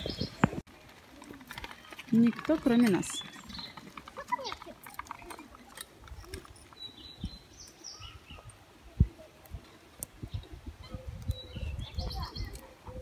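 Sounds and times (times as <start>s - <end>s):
bird chirps: 6.0s - 8.6s, 10.2s - 13.0s.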